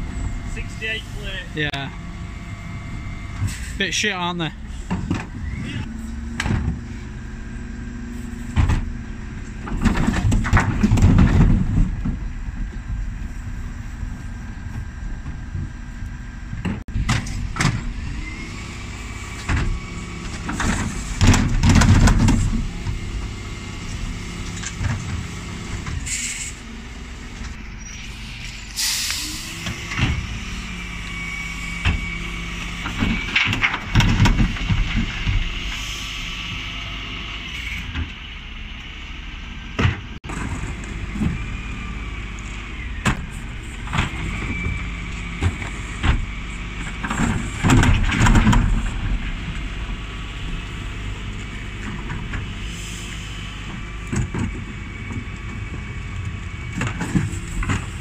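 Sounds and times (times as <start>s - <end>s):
lorry engine and hydraulics humming: 0.0s - 58.0s.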